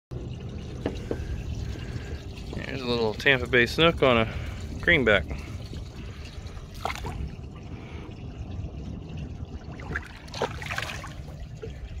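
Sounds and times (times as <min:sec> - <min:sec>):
steady low rumble: 0:00.1 - 0:12.0
water splashing and trickling: 0:00.1 - 0:12.0.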